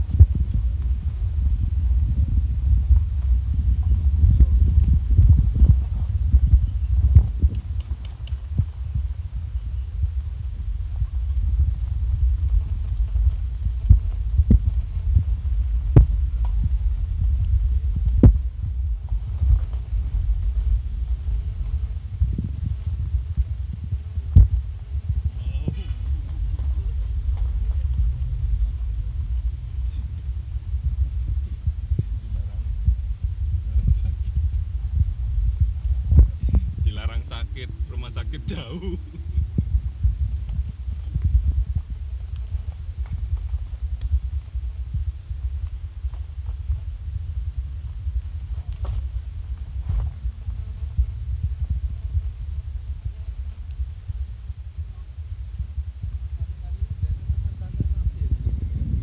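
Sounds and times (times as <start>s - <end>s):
car cabin rumble on gravel: 0.0s - 55.0s.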